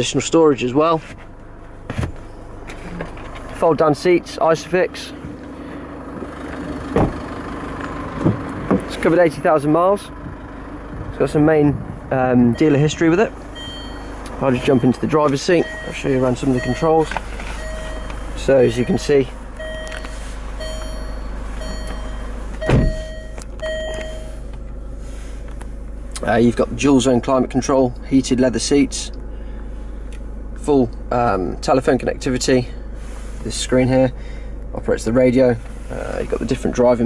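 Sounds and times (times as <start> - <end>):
diesel engine idling: 0.0 - 37.0
short thump: 1.1 - 3.2, 6.9 - 7.2, 22.6 - 23.2
car warning chime beeping: 12.5 - 24.5.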